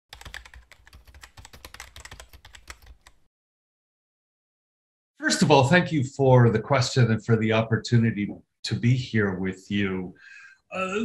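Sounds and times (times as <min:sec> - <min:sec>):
computer keyboard typing: 0:00.1 - 0:03.2.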